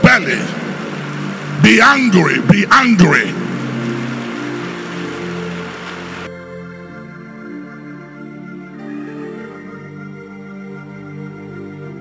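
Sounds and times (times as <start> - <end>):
congregation praying aloud: 0.0 - 5.5
sustained keyboard chords: 0.0 - 12.0.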